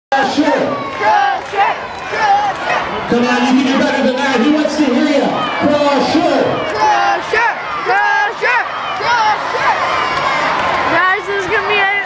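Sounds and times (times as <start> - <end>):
crowd cheering and yelling: 0.1 - 12.0.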